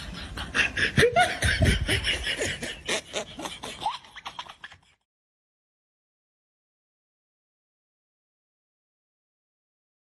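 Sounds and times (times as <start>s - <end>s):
person laughing: 0.0s - 5.1s.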